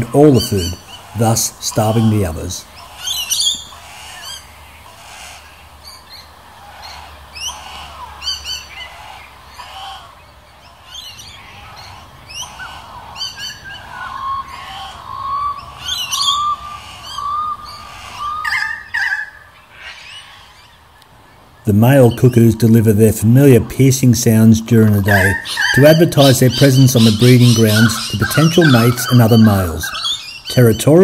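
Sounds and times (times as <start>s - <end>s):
birds chirping and squawking: 0.0s - 31.0s
wavering whistled bird call: 2.8s - 4.4s, 10.7s - 20.7s, 25.1s - 30.9s.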